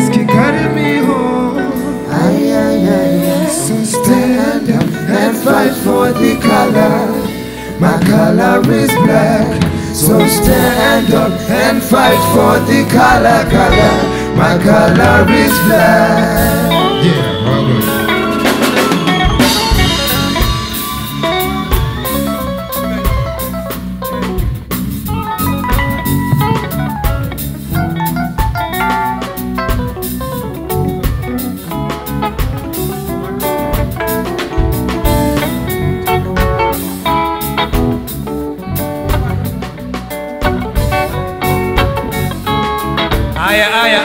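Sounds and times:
electric bass: 0.0s - 43.5s
drum kit beat: 0.0s - 44.0s
electric guitar: 0.0s - 44.0s.

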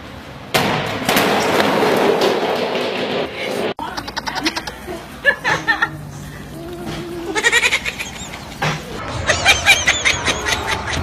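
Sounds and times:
person making wavering cries: 6.5s - 8.2s.

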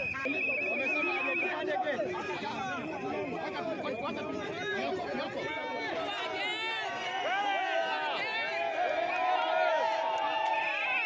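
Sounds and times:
crowd talking: 0.0s - 11.0s.

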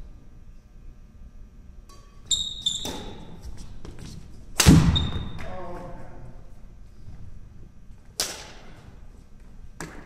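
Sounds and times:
court shoes squeaking: 1.9s - 5.4s.

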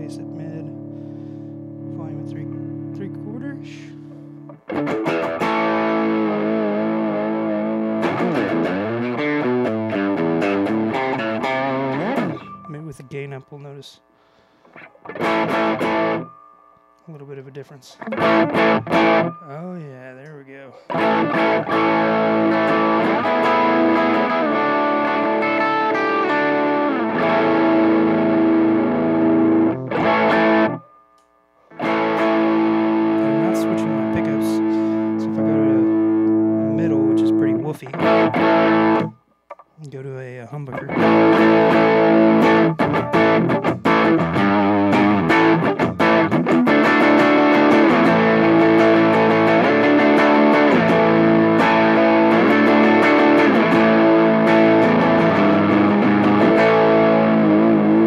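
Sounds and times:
distorted electric guitar: 0.0s - 13.2s, 14.6s - 58.0s.

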